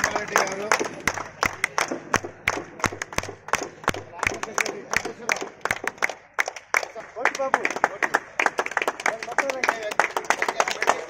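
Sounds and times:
people clapping in time: 0.0 - 11.0.

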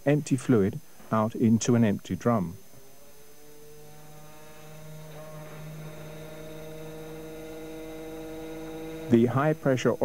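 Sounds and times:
electric pump motor humming: 2.7 - 10.0.

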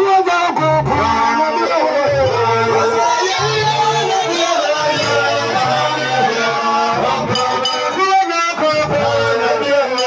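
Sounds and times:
low bass notes: 0.4 - 9.7.

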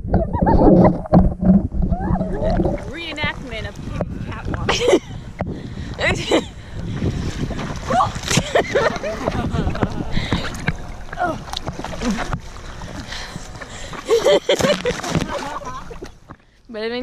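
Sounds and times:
water splashing and sloshing: 0.0 - 17.0
voices: 1.9 - 5.0
people laughing: 4.7 - 5.1, 7.9 - 10.9, 13.7 - 16.1.

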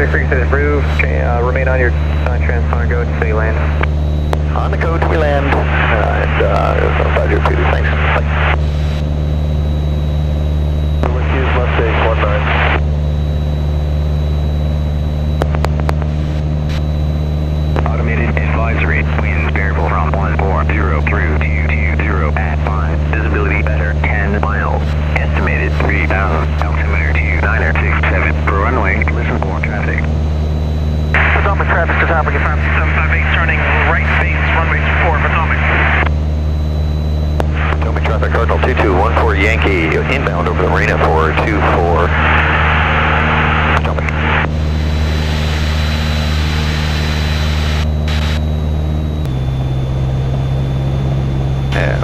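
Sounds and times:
plane engine and propeller drone: 0.0 - 52.0.

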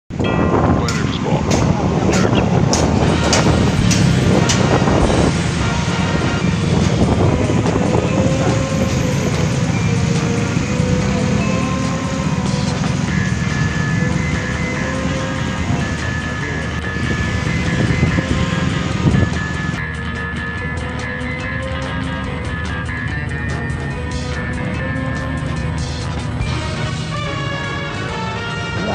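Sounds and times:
wind buffeting microphone: 0.1 - 19.8
music playing: 0.1 - 28.9
motor scooter engine: 0.9 - 27.0.

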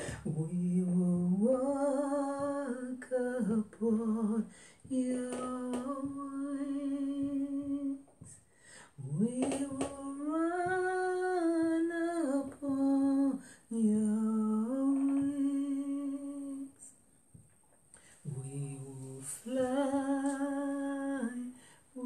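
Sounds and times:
person humming a slow melody: 18.2 - 22.0.

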